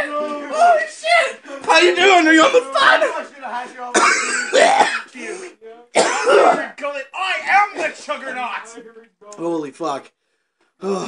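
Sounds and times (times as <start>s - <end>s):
man coughing: 3.9s - 6.8s.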